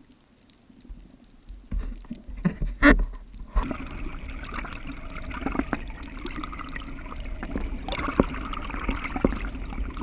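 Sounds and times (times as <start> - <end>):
underwater rumbling water rush: 0.8 - 10.0.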